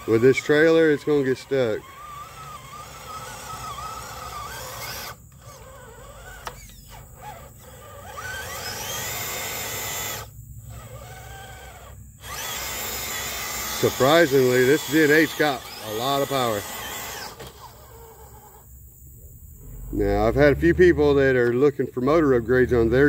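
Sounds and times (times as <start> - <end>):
electric motor whining: 0.0 - 23.0.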